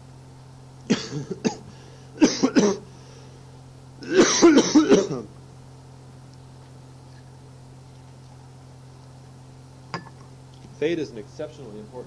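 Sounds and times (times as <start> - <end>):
steady low hum: 0.0 - 12.0
person coughing: 0.9 - 2.9, 4.0 - 5.3.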